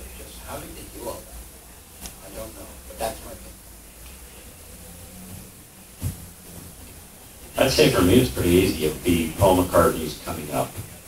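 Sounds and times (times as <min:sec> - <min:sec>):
microphone handling noise: 0:05.3 - 0:06.7
microphone handling thump: 0:05.4 - 0:06.3.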